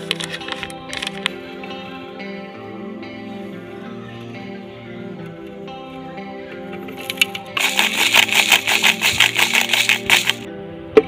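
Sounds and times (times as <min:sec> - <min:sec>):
background guitar music: 0:00.0 - 0:11.0
spice powder clattering into jar: 0:07.1 - 0:10.5.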